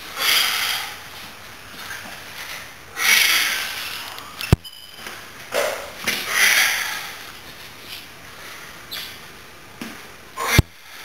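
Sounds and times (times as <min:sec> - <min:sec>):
man exhaling forcefully: 0:10.4 - 0:11.0.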